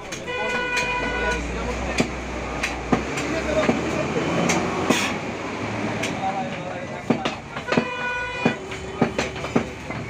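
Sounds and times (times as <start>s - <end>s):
low hum of street: 0.0s - 10.0s
vehicle horn: 0.2s - 1.4s, 7.6s - 9.4s
knock on wooden block: 7.0s - 10.0s.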